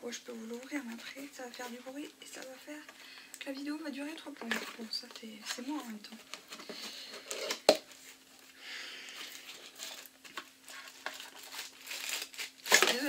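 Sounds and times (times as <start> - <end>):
cardboard packaging rustling: 9.1 - 13.0.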